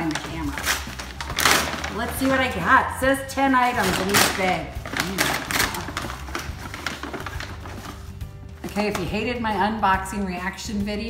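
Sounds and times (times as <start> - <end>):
paper bag crinkling: 0.0 - 9.2.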